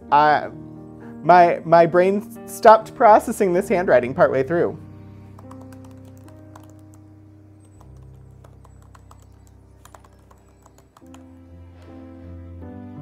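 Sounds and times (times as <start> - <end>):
soft background music: 0.0 - 13.0
keyboard typing: 5.3 - 11.9.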